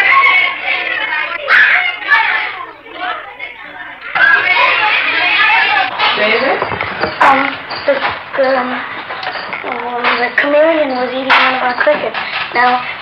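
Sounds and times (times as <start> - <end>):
children's voices chattering: 0.0 - 13.0.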